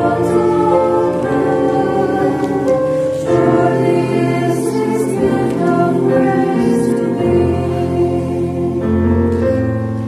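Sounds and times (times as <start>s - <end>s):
mixed choir singing: 0.0s - 9.8s.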